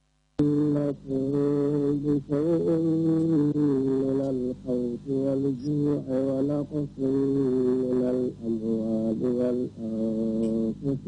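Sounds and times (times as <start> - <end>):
man chanting religious phrases: 0.4 - 11.0.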